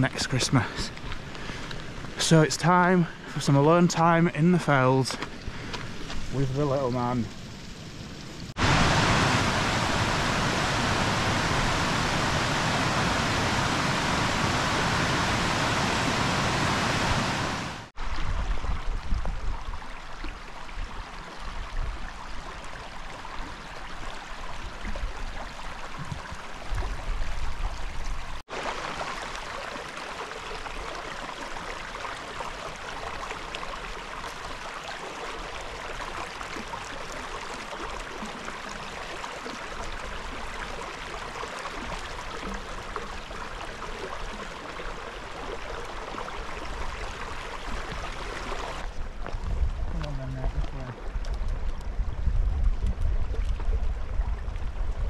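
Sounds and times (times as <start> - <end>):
low rumbles: 7.2 - 17.9
water rushing over rocks: 8.6 - 18.4, 28.5 - 49.0.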